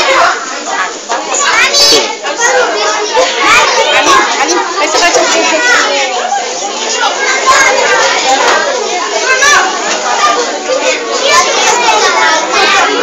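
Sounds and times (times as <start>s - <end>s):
children talking and calling out: 0.0s - 13.0s.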